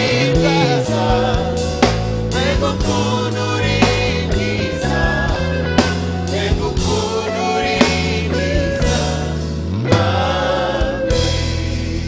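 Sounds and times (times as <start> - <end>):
gospel choir singing: 0.0 - 12.0
low instrumental backing: 0.0 - 12.0.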